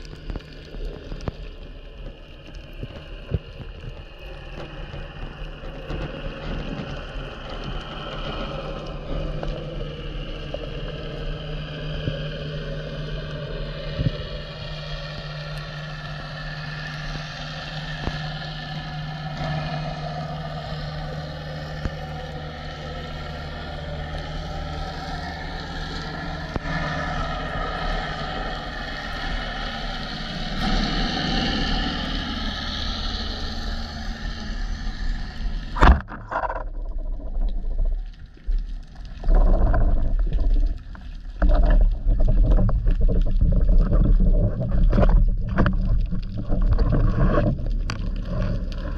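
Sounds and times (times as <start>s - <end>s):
boat engine drone underwater: 0.0s - 48.9s.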